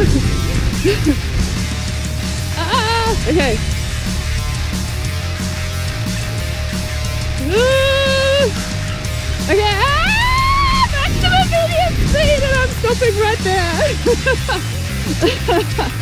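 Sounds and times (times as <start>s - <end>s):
heavy metal electric guitar music: 0.0s - 16.0s.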